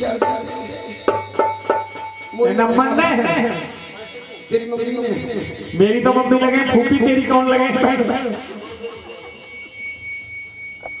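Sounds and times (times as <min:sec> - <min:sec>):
high-pitched whine: 0:00.0 - 0:11.0.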